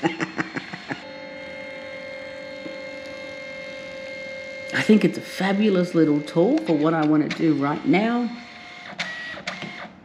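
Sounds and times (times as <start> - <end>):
printer motor whirring hum: 0.0 - 10.0.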